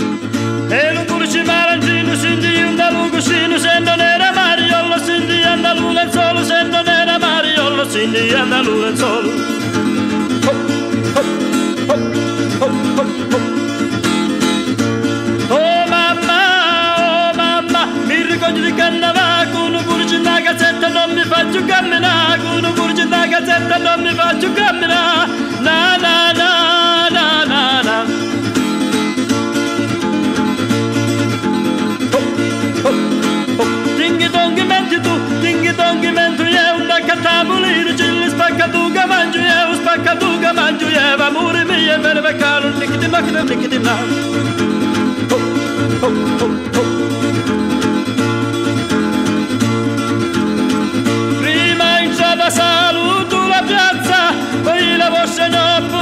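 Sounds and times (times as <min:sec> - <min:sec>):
lively folk band: 0:00.0 - 0:56.0.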